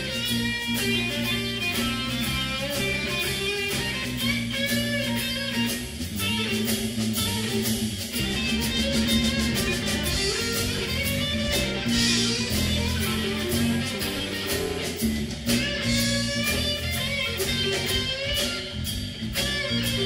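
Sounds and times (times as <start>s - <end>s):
drum kit steady beat: 0.0s - 20.0s
electric guitars: 0.0s - 20.0s.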